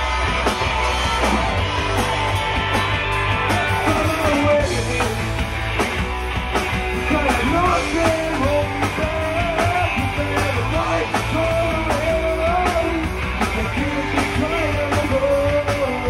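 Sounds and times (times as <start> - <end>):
punk rock band playing: 0.0 - 16.0
person singing: 3.5 - 5.2, 7.0 - 16.0.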